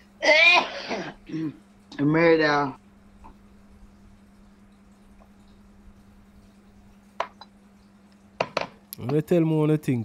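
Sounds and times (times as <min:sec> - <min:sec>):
person clearing throat: 0:00.2 - 0:01.6.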